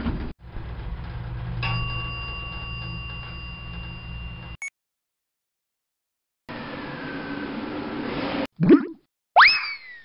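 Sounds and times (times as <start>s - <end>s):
low rumble of moving lift car: 0.0s - 4.6s.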